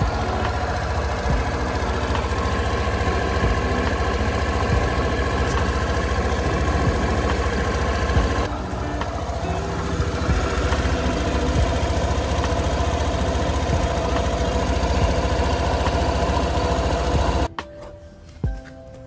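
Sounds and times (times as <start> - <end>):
scooter engine running: 0.0 - 17.5.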